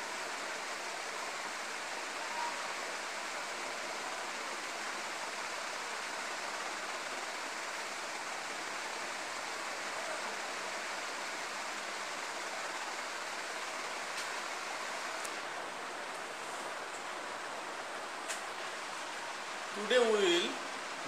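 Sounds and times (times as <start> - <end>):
steady background hiss: 0.0 - 21.0.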